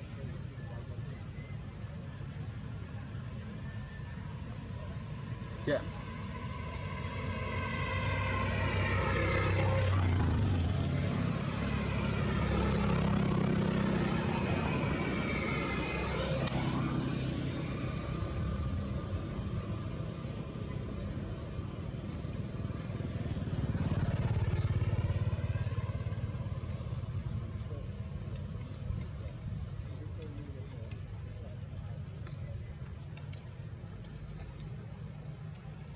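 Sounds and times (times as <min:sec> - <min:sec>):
passing vehicle engines rumbling: 0:00.0 - 0:35.9.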